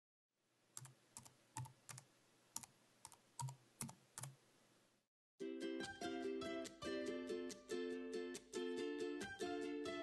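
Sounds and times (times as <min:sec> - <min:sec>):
keyboard typing: 0:00.8 - 0:04.4.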